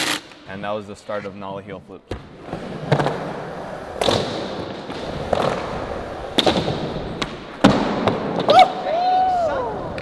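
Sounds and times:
skateboard rolling on concrete: 2.4 - 8.6.

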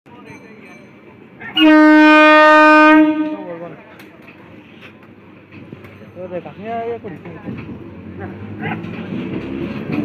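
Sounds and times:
train rolling with low rumble: 0.1 - 10.0
light clicks of train wheels: 3.4 - 10.0.

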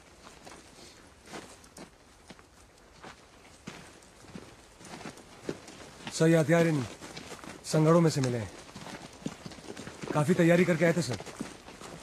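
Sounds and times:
soft footsteps: 0.0 - 12.0.

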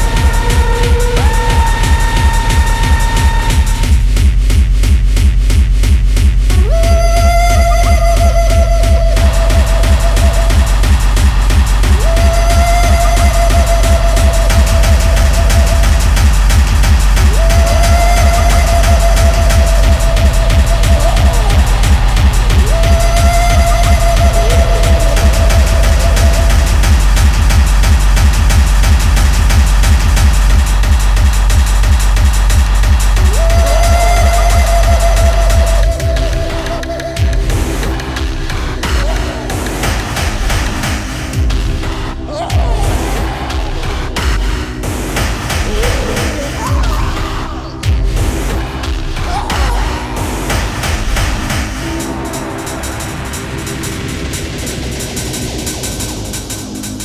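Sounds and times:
electronic dance music: 0.0 - 57.0
steady synth tone: 8.3 - 30.6.

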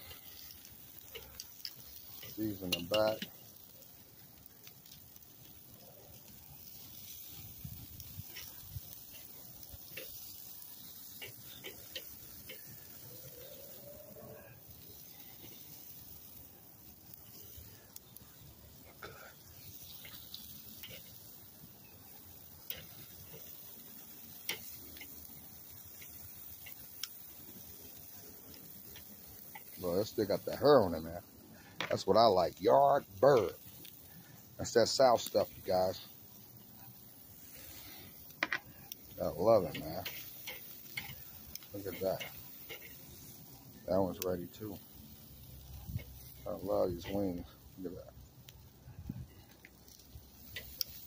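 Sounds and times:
chicken wings sizzling on grill: 0.0 - 51.0
metal tongs clicking on grate: 0.4 - 3.3, 24.5 - 25.2, 39.7 - 43.0.

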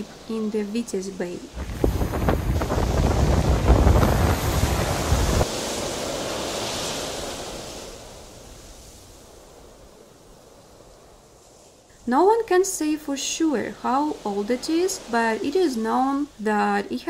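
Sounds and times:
waves breaking on beach: 0.0 - 16.4
wind buffeting microphone: 1.4 - 11.6.

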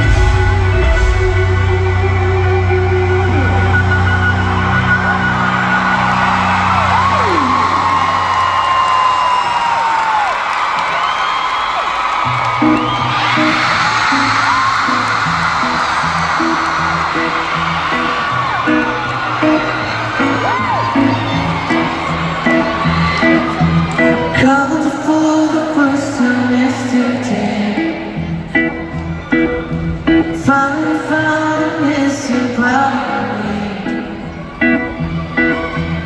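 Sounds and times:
electric guitar riff: 0.0 - 8.7, 12.2 - 31.8, 32.8 - 36.0
crowd screaming and cheering: 0.0 - 36.0.

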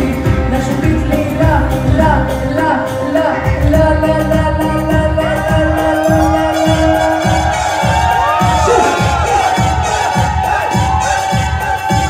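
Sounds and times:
keyboard melody: 0.0 - 12.0
steady drum beat: 3.5 - 12.0
crowd cheering and shouting: 4.8 - 12.0.

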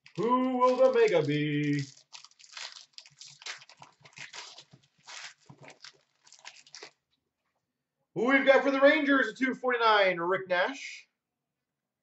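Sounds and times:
wrapper crinkling and tearing: 0.0 - 7.0.

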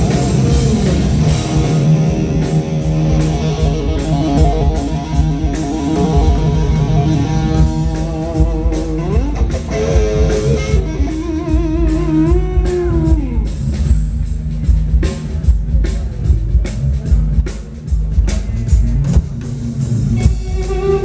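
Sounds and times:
electric guitar lead with vibrato: 0.0 - 14.0, 20.0 - 21.0
bass guitar: 0.0 - 21.0.

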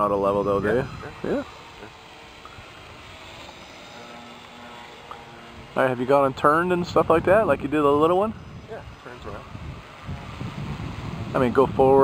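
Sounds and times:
drone propellers whirring: 0.0 - 12.0.

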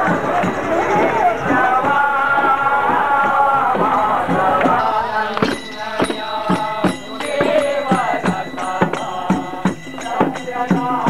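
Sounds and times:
percussion steady beat: 0.0 - 11.0
man singing devotional song: 1.2 - 11.0.

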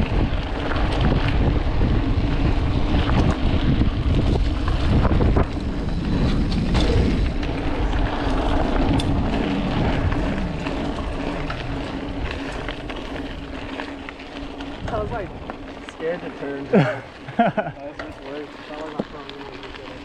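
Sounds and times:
bike tyres rolling on dirt: 0.0 - 20.0
wind buffeting microphone: 0.0 - 20.0.

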